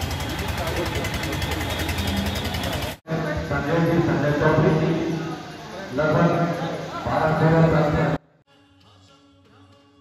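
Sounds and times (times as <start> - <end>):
engine rattling: 0.0 - 6.0
crowd voices: 0.0 - 8.2.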